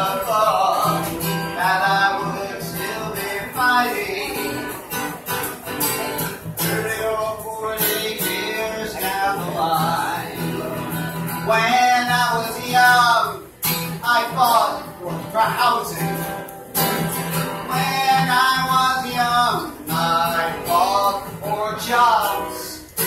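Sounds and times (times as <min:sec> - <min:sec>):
man singing: 0:00.0 - 0:05.3, 0:05.9 - 0:23.0
strummed acoustic guitar: 0:00.0 - 0:23.0.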